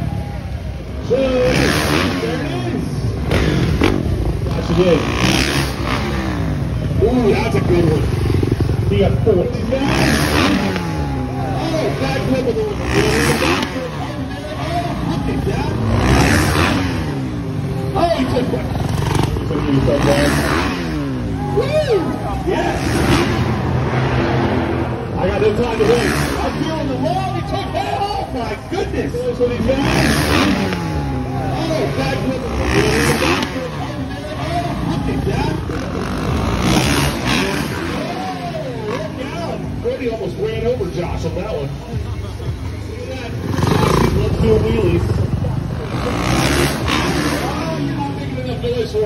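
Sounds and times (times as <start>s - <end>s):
dirt bike engine revving: 0.0s - 49.0s.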